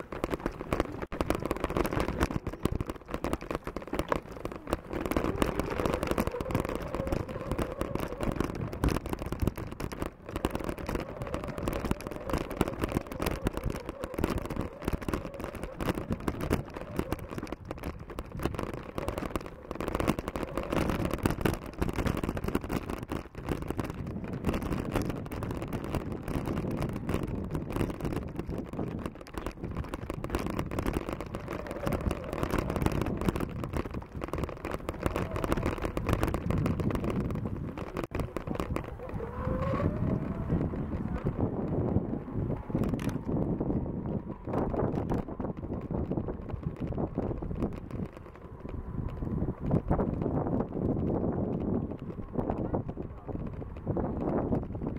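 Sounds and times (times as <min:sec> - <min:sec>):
bicycle jolts and knocks: 0:00.0 - 0:54.9
bicycle rumble on dirt track: 0:00.0 - 0:54.9
wind buffeting microphone: 0:00.0 - 0:54.9.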